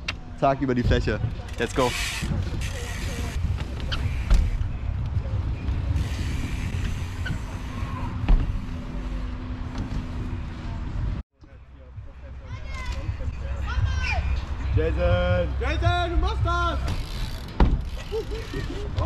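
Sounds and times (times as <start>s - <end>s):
bike rolling on concrete: 0.7s - 11.2s, 14.8s - 19.0s.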